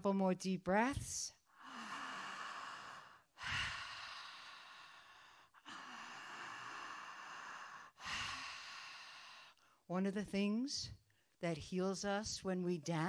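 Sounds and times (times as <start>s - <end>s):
woman breathing deeply into microphone: 1.6s - 9.8s.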